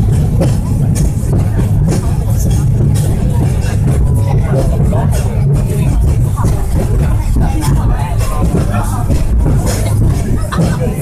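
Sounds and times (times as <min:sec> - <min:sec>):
passengers' voices: 0:00.0 - 0:11.0
tram carriage rumbling: 0:00.0 - 0:11.0.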